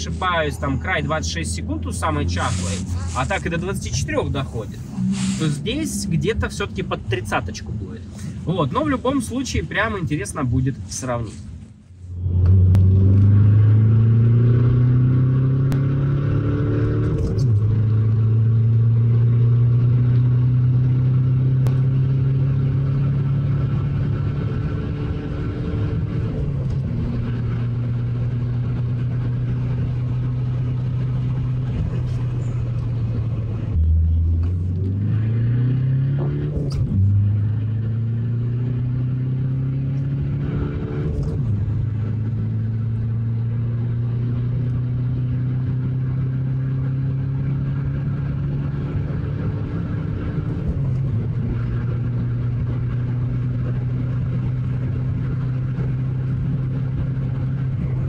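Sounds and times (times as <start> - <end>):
diesel engine accelerating hard: 0.0 - 10.7, 12.1 - 58.0.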